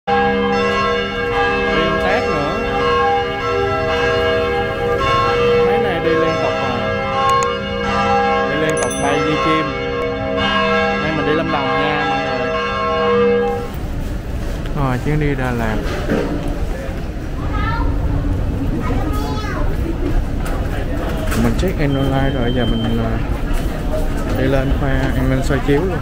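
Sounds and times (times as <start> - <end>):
church bells ringing: 0.1 - 14.1.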